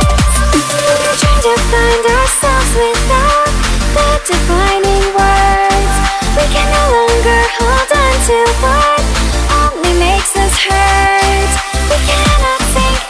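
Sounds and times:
pulsing bass beat: 0.0 - 13.0.

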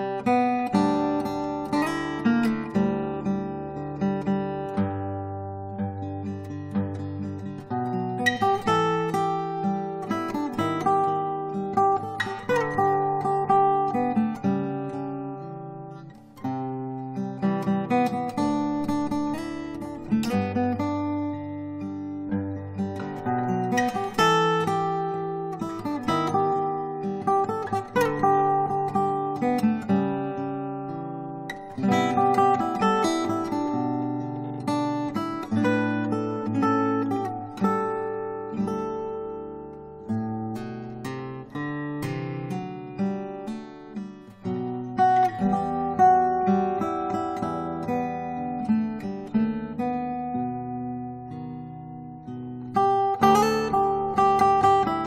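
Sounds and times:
acoustic guitar playing: 0.0 - 55.0.

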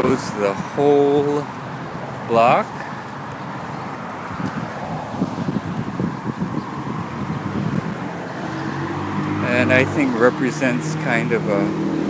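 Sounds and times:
low rumbling: 0.0 - 10.3
city street traffic: 0.0 - 12.0.

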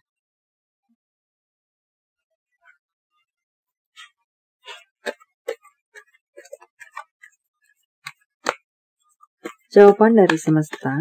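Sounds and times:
cards clicking and tapping: 9.4 - 11.0.

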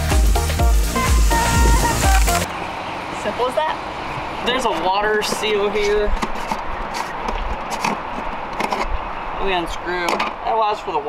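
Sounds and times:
low rumble: 1.0 - 2.6.

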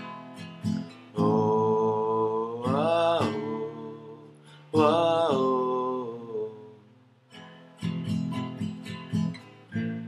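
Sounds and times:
acoustic guitar strumming: 0.0 - 10.0
man singing wordless note: 1.1 - 6.8.

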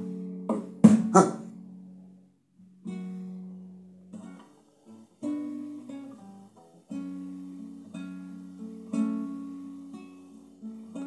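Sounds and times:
classical guitar strum: 0.0 - 2.0, 2.6 - 11.0.

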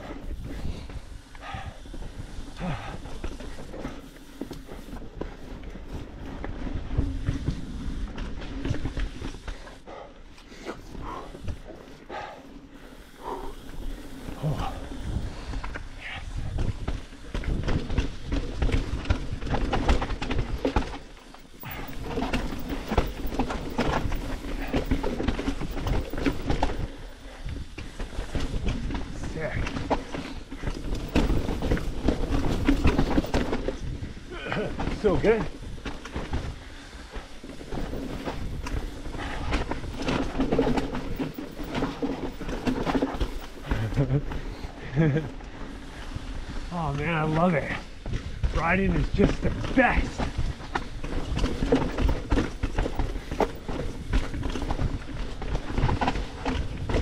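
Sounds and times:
bike tyres crunching over rock: 0.0 - 9.8, 10.8 - 57.0
bike chain and frame clattering: 10.8 - 46.6, 47.2 - 57.0.

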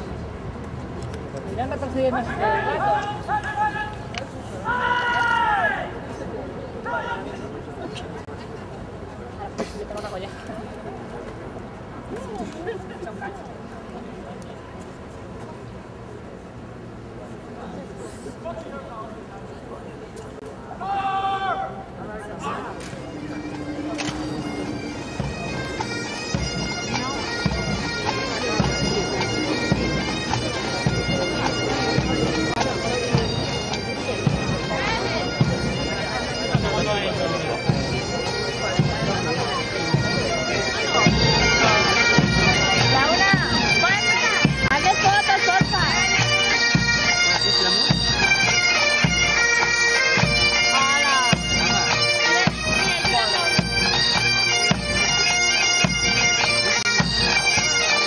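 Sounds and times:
bagpipe drones: 22.4 - 58.0
bagpipes playing a march: 22.6 - 58.0.

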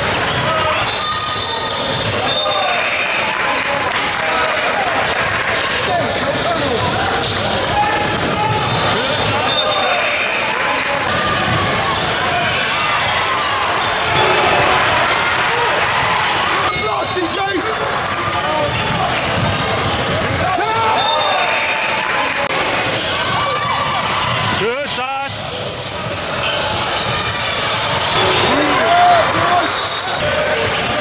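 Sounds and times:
indistinct voices: 0.0 - 31.0.

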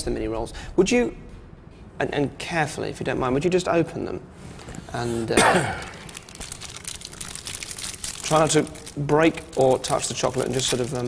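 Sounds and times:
wrappers crinkling: 5.7 - 11.0.

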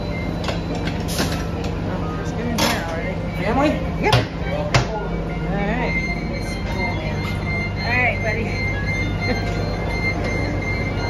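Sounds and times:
wheelchair lift warning beeper: 0.0 - 2.4, 5.2 - 11.0
bus engine hum: 0.0 - 11.0
muffled voices: 0.9 - 11.0.

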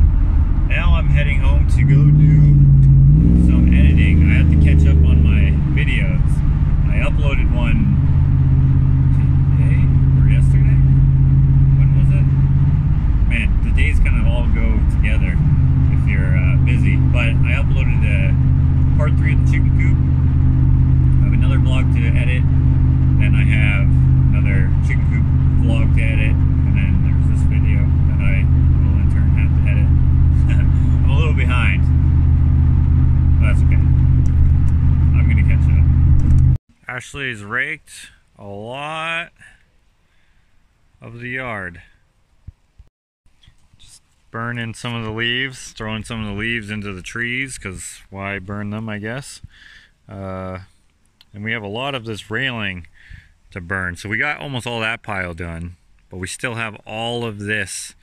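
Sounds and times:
vehicle engine and road drone: 0.0 - 36.7, 42.2 - 49.5.

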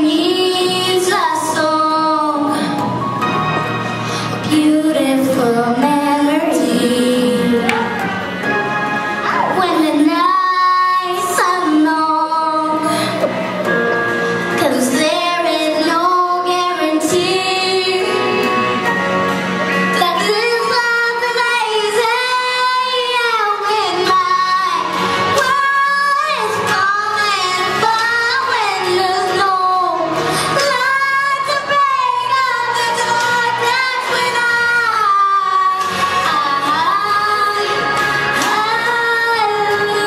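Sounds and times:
girl singing into a microphone: 0.0 - 8.0, 9.1 - 19.0, 19.6 - 40.0.

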